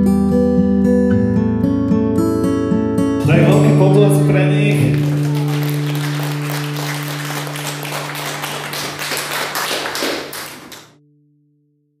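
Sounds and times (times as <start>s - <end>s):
low music chord: 3.2s - 8.7s
crowd clapping: 3.3s - 11.0s.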